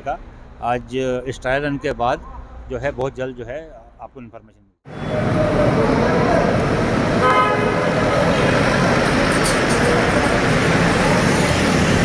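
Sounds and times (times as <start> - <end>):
traffic in a tunnel: 4.9 - 12.0
car horn tooting: 7.2 - 8.5.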